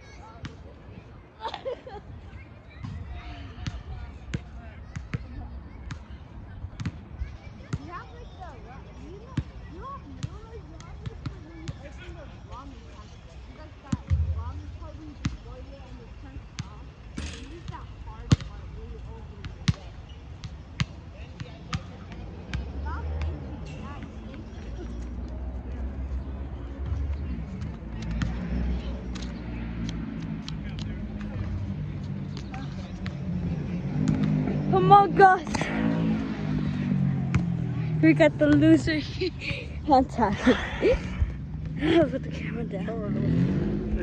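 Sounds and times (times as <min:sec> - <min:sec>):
steady low rumble: 0:14.1 - 0:15.2.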